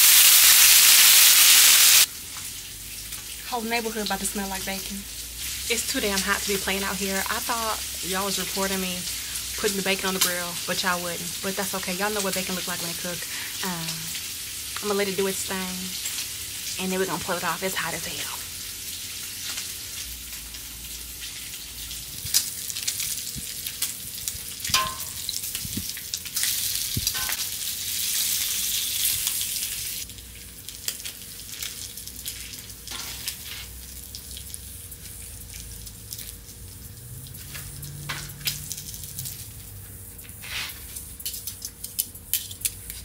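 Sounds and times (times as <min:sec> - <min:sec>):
bacon sizzling on a griddle: 0:00.0 - 0:43.0.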